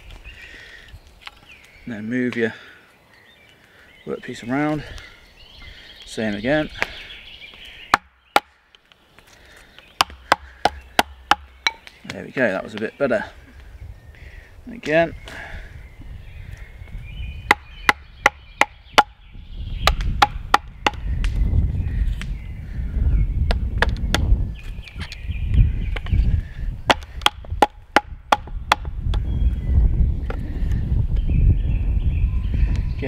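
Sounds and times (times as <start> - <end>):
wood splitting: 7.6 - 12.2, 17.4 - 19.2, 19.8 - 21.4, 23.5 - 24.4, 26.8 - 29.2.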